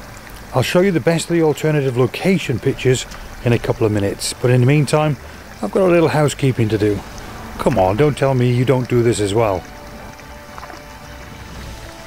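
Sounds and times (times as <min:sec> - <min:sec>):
soft sustained background music: 0:02.3 - 0:12.0.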